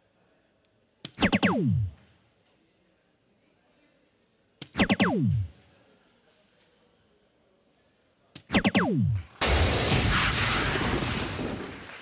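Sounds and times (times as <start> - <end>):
electronic tones sliding down: 1.2 - 2.0, 4.8 - 5.5, 8.5 - 9.3.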